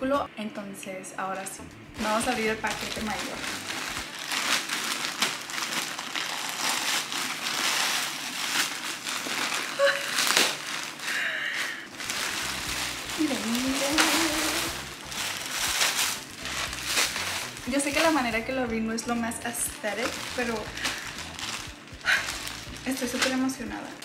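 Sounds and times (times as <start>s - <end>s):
plastic crinkling and crackling: 2.0s - 24.0s
plastic mailer bag tearing: 2.0s - 24.0s.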